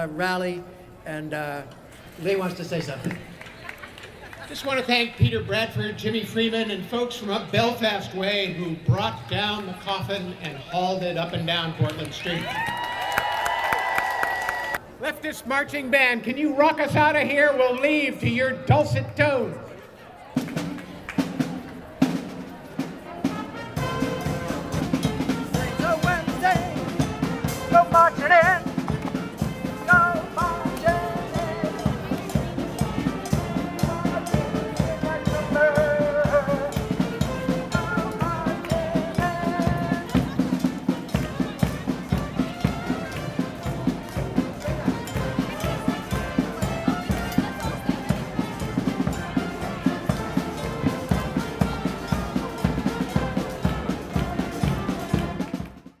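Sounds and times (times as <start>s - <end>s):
brass band playing upbeat tune: 4.5s - 56.0s
steady drum beat: 20.4s - 56.0s.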